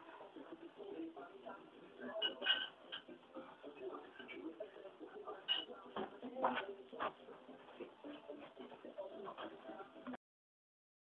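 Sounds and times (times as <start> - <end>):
faint indistinct voices: 0.0 - 10.2.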